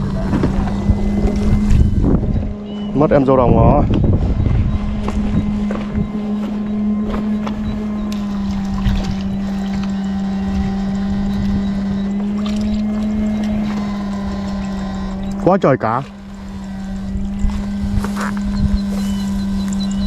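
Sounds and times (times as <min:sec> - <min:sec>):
inverter electrical hum: 0:00.0 - 0:20.0.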